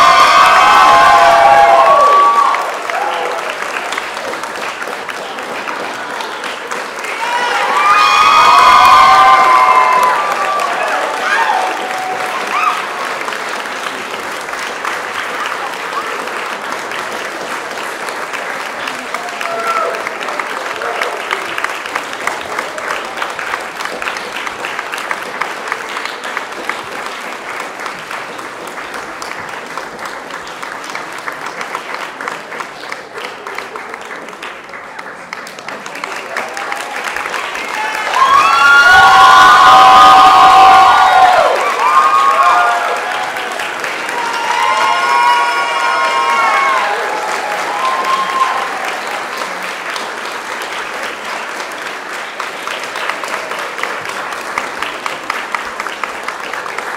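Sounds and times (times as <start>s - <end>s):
crowd cheering: 0.0s - 34.7s, 35.4s - 56.9s
audience applauding: 0.0s - 56.9s.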